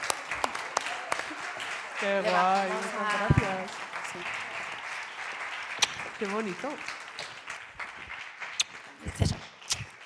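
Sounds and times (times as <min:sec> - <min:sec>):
audience applause: 0:00.0 - 0:10.0.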